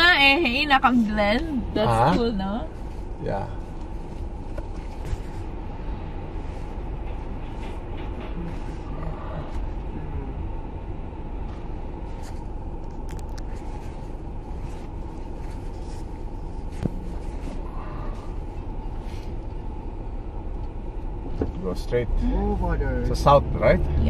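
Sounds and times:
car engine rumble: 0.0s - 24.0s
road noise: 0.0s - 24.0s.

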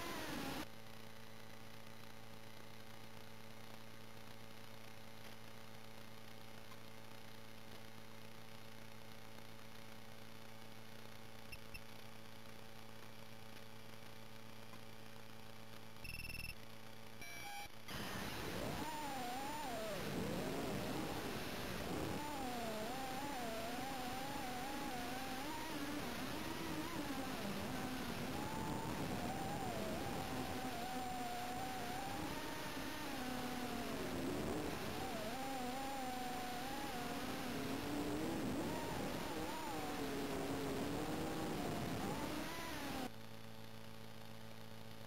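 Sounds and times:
drone motors whining: 0.0s - 0.7s, 17.9s - 43.1s
brief steady tones: 16.0s - 16.6s.

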